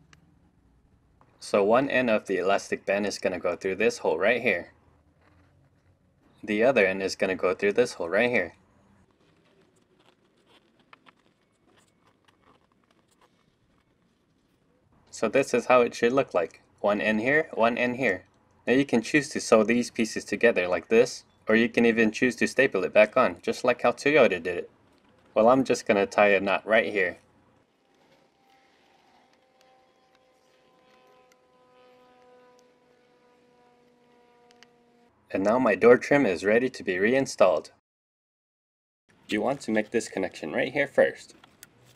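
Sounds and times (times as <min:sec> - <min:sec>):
faint steady hum: 0:00.0 - 0:37.2
elastic band rustling: 0:08.1 - 0:14.8.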